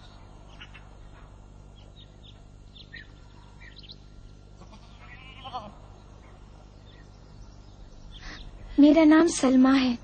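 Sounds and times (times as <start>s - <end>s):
sheep bleating: 4.6s - 5.8s.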